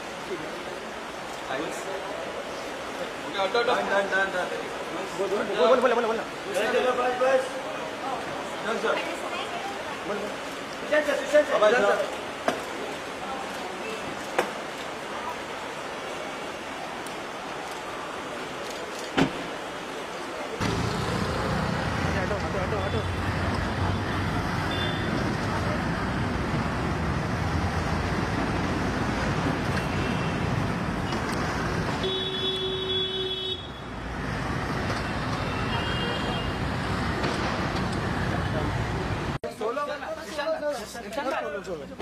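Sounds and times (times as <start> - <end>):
passing traffic: 0.0 - 42.0.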